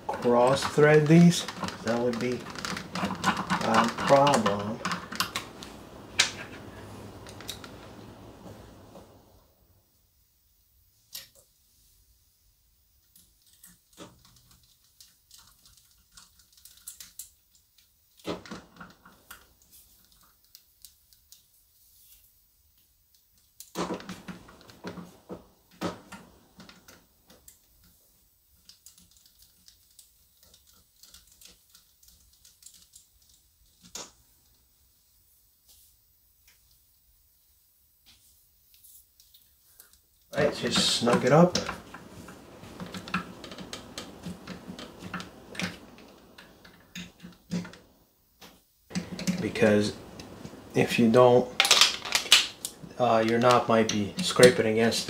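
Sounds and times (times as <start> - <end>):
light clicks and clatters of small parts: 0.0 - 7.9, 13.0 - 34.8, 38.0 - 55.0.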